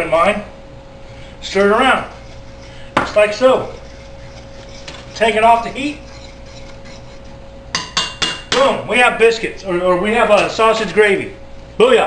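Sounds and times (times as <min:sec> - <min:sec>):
faint steady hum: 0:00.0 - 0:12.0
utensil clanking on steel saucepan: 0:01.5 - 0:08.8, 0:10.3 - 0:10.8.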